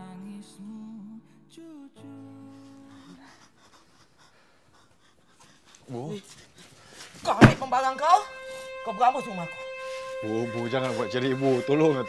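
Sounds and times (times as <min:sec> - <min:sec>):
cloth bag rustling: 0:06.4 - 0:08.2
held music note: 0:07.4 - 0:12.0.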